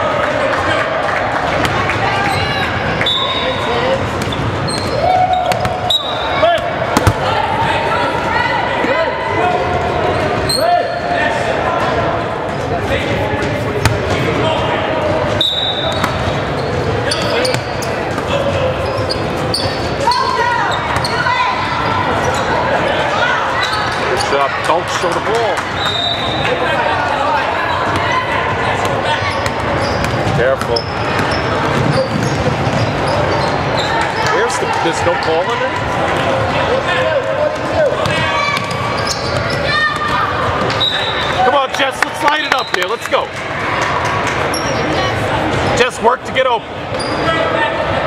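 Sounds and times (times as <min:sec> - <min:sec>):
basketball bouncing on court: 0:04.1 - 0:05.9, 0:06.6 - 0:07.3, 0:15.9 - 0:18.4, 0:28.8 - 0:34.3, 0:37.6 - 0:40.8
spectators shouting: 0:04.7 - 0:11.8, 0:33.1 - 0:42.4.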